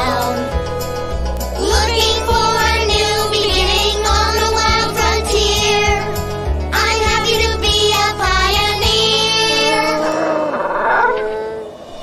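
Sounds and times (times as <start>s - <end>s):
cartoon song vocal: 0.0s - 0.6s, 1.6s - 6.0s, 6.8s - 10.5s
backing music: 0.0s - 10.2s
voice-like call: 9.4s - 12.0s.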